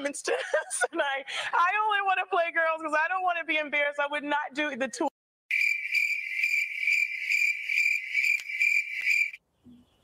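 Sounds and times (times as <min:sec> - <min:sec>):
crickets chirping: 0:05.5 - 0:09.4.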